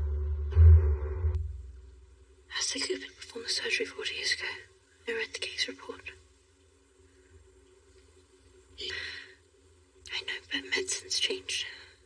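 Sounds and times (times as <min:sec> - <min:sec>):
faint low background noise: 0:00.0 - 0:12.0.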